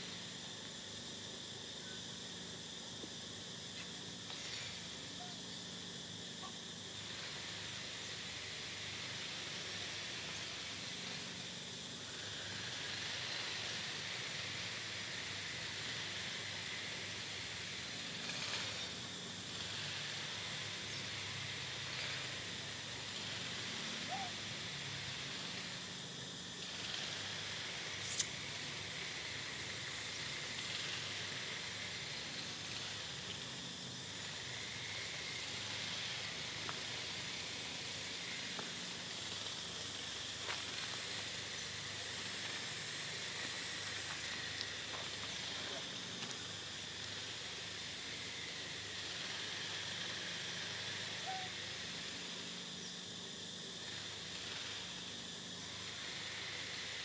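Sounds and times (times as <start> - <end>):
outdoor background hiss: 0.0 - 57.0
sharp high-pitched click: 28.0 - 28.4.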